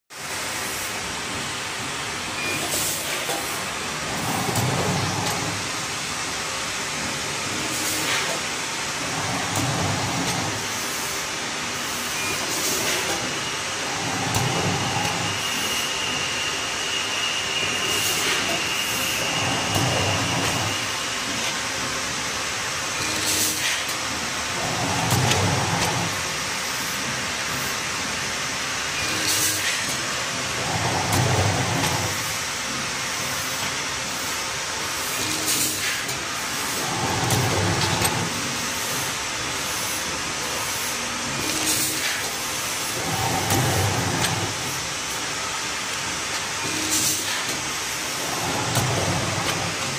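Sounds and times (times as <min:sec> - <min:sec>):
packing machine hissing: 0:00.2 - 0:49.9.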